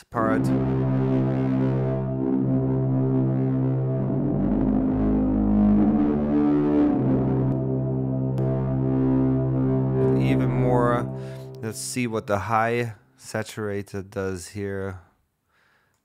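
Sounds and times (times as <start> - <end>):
distorted synth bass notes: 0.2 - 12.4.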